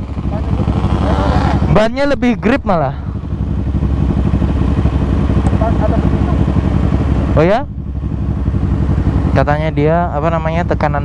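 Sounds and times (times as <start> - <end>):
motorcycle engines idling: 0.0 - 11.0.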